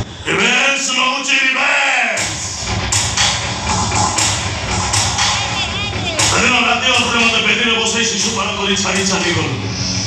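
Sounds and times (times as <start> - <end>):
stage music over loudspeakers: 0.0 - 10.0.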